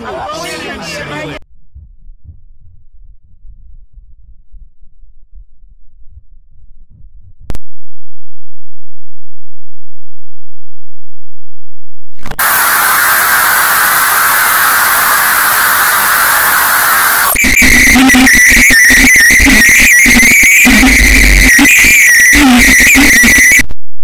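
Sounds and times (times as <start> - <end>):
choppy stuttering sound: 12.2 - 23.6
steady high tone: 12.2 - 23.6.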